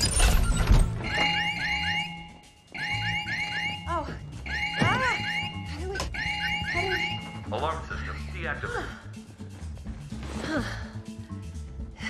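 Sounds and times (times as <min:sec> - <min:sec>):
alarm rising electronic chirps: 0:01.0 - 0:07.6
alarm steady high tone: 0:01.0 - 0:07.8.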